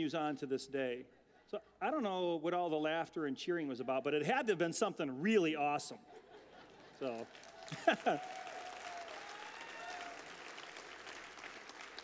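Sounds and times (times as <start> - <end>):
audience clapping: 6.6 - 12.0.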